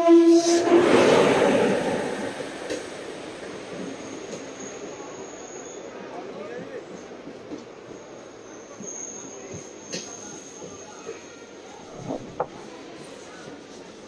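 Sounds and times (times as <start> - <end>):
train horn: 0.0 - 0.8
faint high squeal: 4.4 - 6.0, 8.1 - 11.6
train coaches clattering and rumbling: 6.5 - 14.0.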